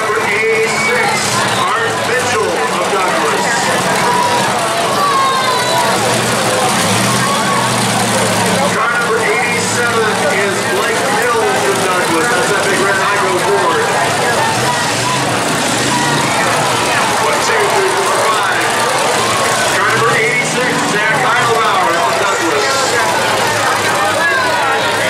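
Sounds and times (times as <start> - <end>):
car engines running loud: 0.0 - 25.0
crowd voices: 0.0 - 25.0.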